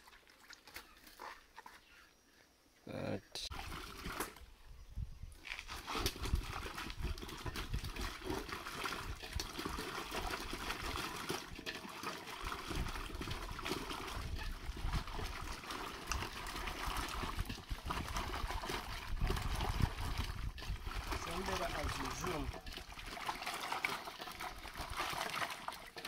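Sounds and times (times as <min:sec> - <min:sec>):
water sloshing in metal basin: 0:00.0 - 0:01.8, 0:03.5 - 0:04.5, 0:05.5 - 0:26.0.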